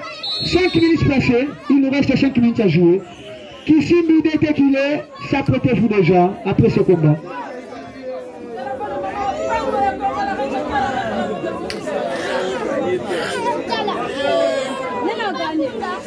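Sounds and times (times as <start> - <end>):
crowd chattering and calling out: 0.0 - 16.0.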